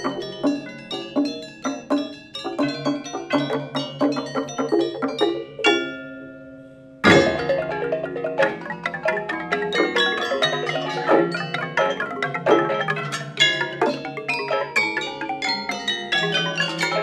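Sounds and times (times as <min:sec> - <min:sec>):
gamelan metallophones playing: 0:00.0 - 0:17.0.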